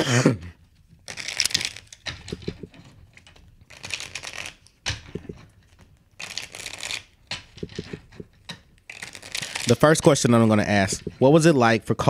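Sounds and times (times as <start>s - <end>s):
cards riffle-shuffled: 1.1s - 2.7s, 3.7s - 4.6s, 6.2s - 9.9s.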